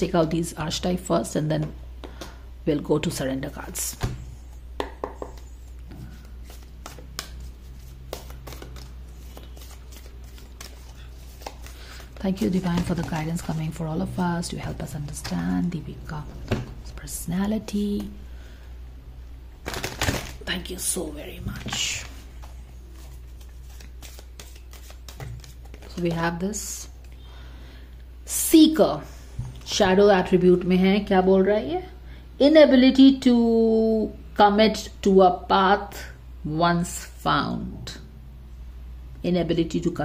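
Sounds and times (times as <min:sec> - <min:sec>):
steady low hum: 0:00.0 - 0:32.6
cards being shuffled: 0:05.0 - 0:13.8, 0:19.6 - 0:20.4, 0:21.5 - 0:27.2.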